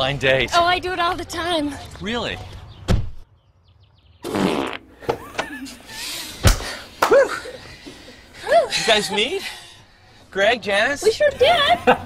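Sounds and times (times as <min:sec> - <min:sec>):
sharp thump: 0:02.9 - 0:03.2
buzzy fart: 0:04.2 - 0:05.1.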